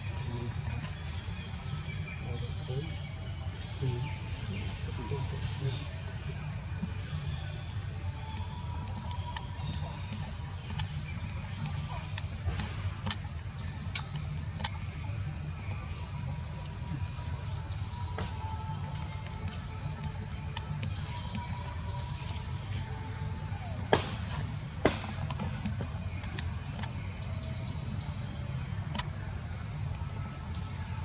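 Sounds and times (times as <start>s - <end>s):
insects droning: 0.0s - 31.0s.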